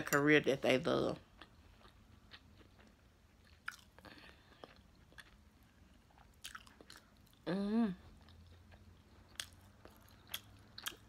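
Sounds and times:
chewing food with mouth closed: 1.2s - 11.0s.

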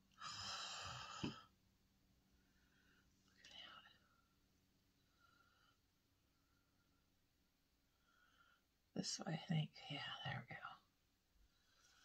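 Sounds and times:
faint whisper: 3.3s - 4.3s, 9.0s - 11.0s.

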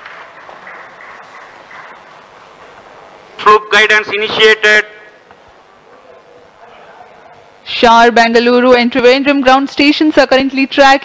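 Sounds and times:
people clapping: 0.0s - 2.9s.

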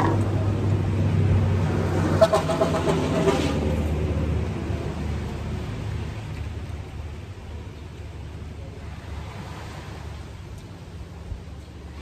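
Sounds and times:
vehicle engine low hum: 0.0s - 12.0s.

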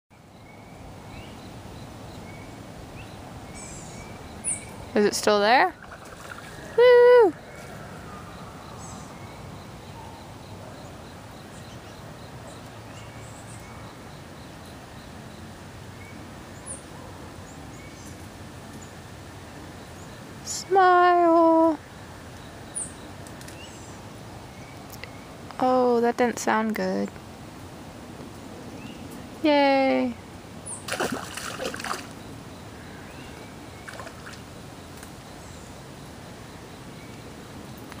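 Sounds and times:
low background noise: 0.1s - 38.0s
outdoor background noise by water: 0.1s - 38.0s.

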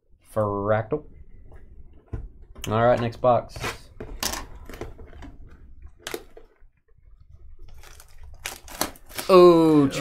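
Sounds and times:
cellophane crackling: 7.6s - 9.5s.

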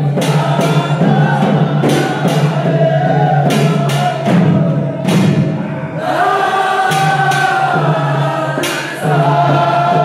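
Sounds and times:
frame drum strikes: 0.0s - 10.0s
men chanting in unison: 0.0s - 10.0s.

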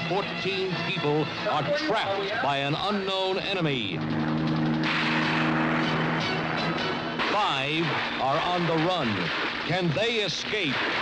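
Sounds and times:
helicopter engine drone: 0.0s - 11.0s
helicopter rotor chop: 0.0s - 11.0s.

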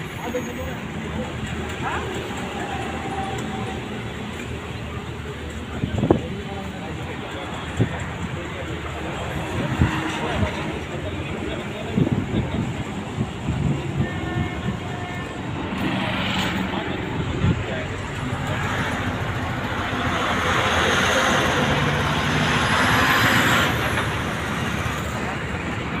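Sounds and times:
highway traffic road noise: 0.0s - 26.0s.

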